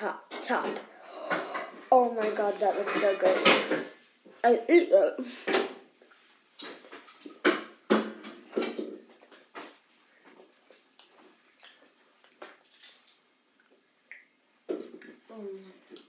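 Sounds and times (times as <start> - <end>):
chewing and wet mouth smacks: 10.4 - 15.2.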